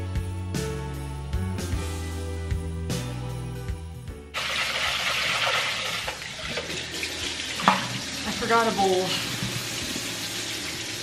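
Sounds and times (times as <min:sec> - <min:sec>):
faucet running into sink: 0:04.4 - 0:11.0.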